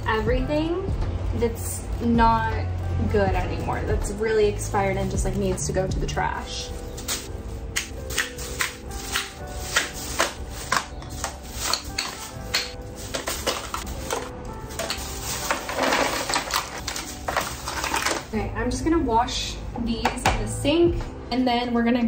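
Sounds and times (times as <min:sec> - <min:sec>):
background music: 0:00.0 - 0:22.0
plastic bag rustling: 0:06.5 - 0:18.3
plastic cases clattering into bag: 0:08.1 - 0:18.3.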